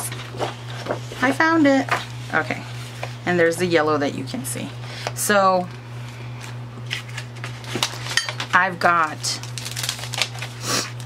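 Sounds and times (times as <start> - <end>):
steady low hum: 0.0 - 11.0
plastic packets crinkling: 6.9 - 11.0.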